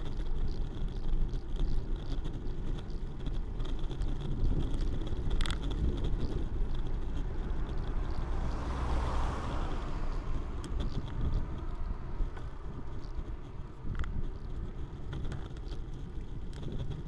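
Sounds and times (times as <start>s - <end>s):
bike clicks: 0.0s - 17.0s
road rumble: 0.0s - 17.0s
wind noise: 0.0s - 17.0s
car overtaking: 6.4s - 14.0s.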